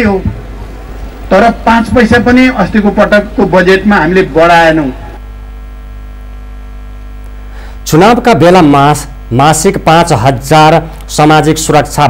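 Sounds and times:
electrical mains hum: 0.0 - 12.0
man speaking: 1.3 - 5.2, 7.8 - 12.0.

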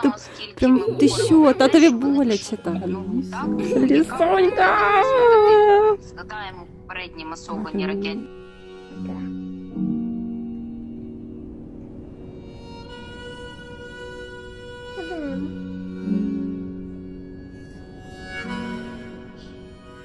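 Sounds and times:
slow instrumental music: 0.0 - 20.0.

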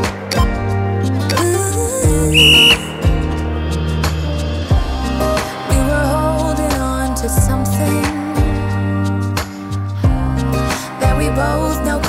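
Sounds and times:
pop music with singing: 0.0 - 12.0
short high beep: 2.3 - 3.2.

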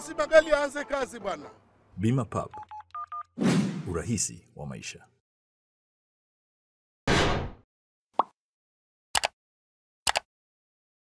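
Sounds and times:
double mouse click: 9.2 - 9.4, 10.1 - 10.3.

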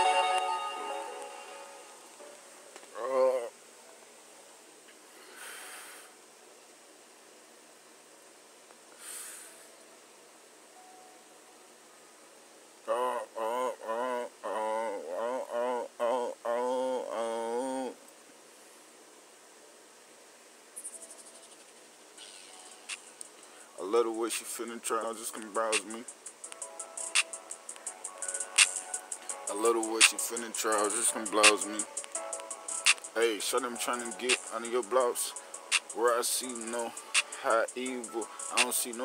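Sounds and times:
music: 0.0 - 2.9, 10.8 - 11.3, 24.8 - 39.0
low background hiss: 0.0 - 39.0
soft burst of hiss: 4.8 - 12.9, 18.2 - 39.0
drawn-out vocal call: 12.8 - 18.0, 22.2 - 23.9, 25.0 - 39.0
short vocal sound: 12.9 - 18.0.

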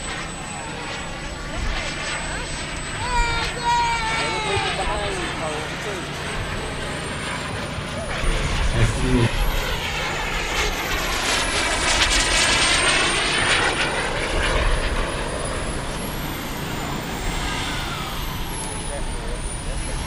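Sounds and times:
model jet turbine whine: 0.0 - 20.0.

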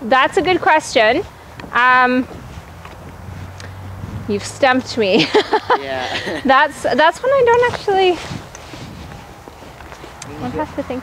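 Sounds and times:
woman's voice: 0.0 - 2.3, 4.3 - 8.3, 10.4 - 11.0
footsteps on soft dirt: 0.0 - 11.0.

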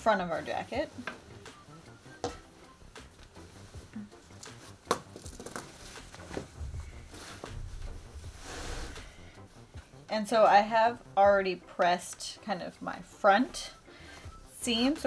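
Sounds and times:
fabric rustling: 0.1 - 10.0.

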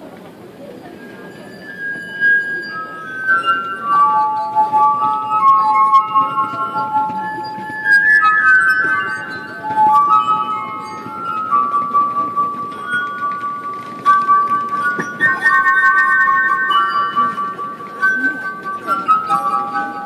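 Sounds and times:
glass harp melody: 0.3 - 20.0.

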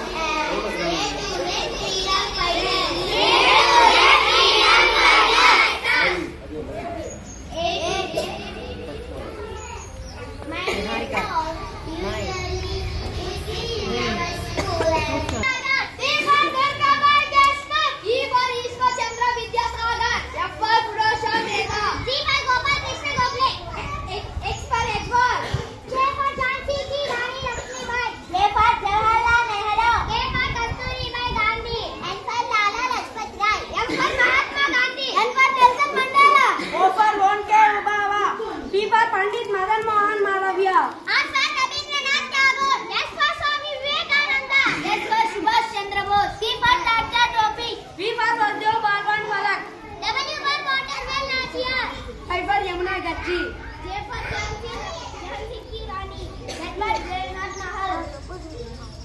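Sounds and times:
schoolchildren talking and calling out: 0.0 - 59.0.

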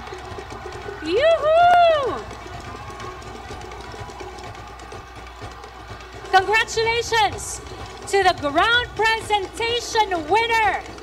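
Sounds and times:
rapid drum roll: 0.0 - 11.0.

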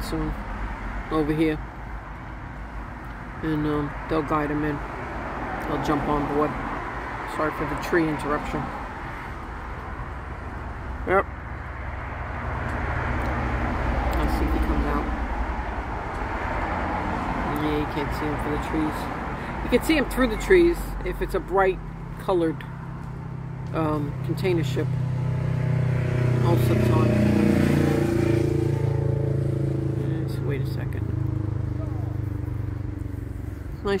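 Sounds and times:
engine humming: 0.0 - 34.0
low outdoor rumble: 17.2 - 34.0.

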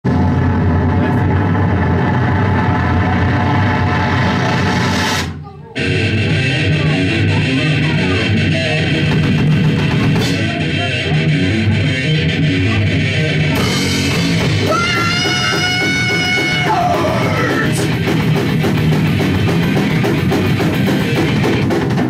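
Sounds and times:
live rock band playing: 0.1 - 22.0.

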